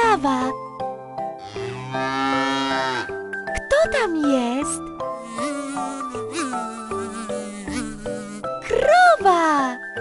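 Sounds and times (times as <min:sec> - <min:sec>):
light children's music: 0:00.0 - 0:10.0
cartoon fly buzzing: 0:05.2 - 0:08.9.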